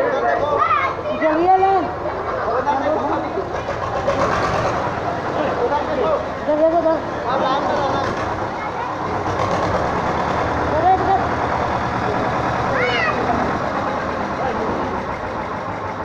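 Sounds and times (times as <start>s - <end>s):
children's voices: 0.0s - 2.5s, 6.6s - 14.1s.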